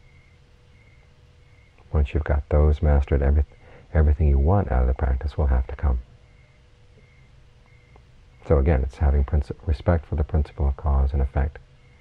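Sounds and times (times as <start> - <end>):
low hum: 0.0 - 12.0
thin steady whine: 0.0 - 12.0
faint high chirps: 6.2 - 8.9.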